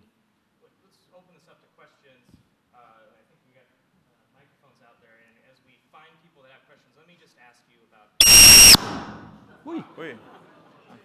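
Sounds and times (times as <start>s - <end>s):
high-pitched feedback squeal: 8.2s - 9.3s.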